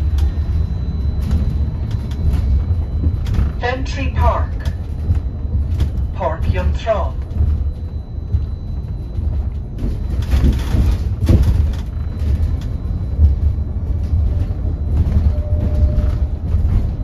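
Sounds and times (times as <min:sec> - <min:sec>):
bus road rumble: 0:00.0 - 0:17.0
knocks and rattles: 0:04.5 - 0:17.0.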